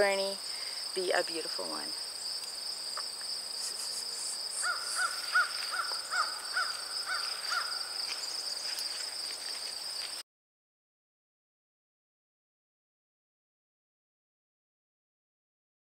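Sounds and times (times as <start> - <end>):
insects droning: 0.0 - 10.2
bird calling: 3.0 - 8.4.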